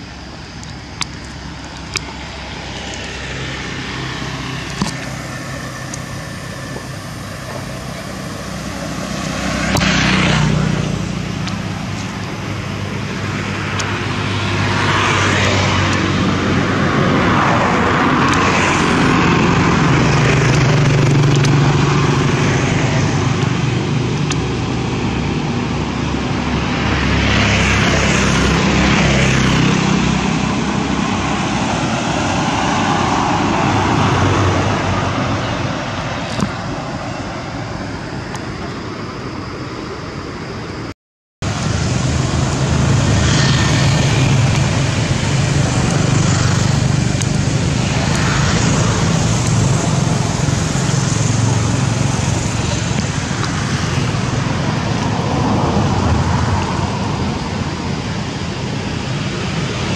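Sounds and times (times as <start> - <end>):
steady engine hum: 0.0 - 59.9
vehicles passing: 0.0 - 59.9.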